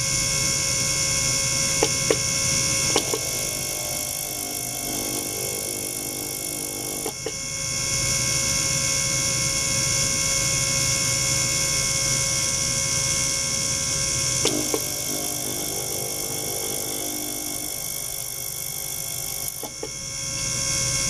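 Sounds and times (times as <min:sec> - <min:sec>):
ultrasonic cleaner hiss and whine: 0:01.5 - 0:08.2, 0:13.9 - 0:21.0
clicks: 0:01.8 - 0:02.2, 0:02.9 - 0:07.4.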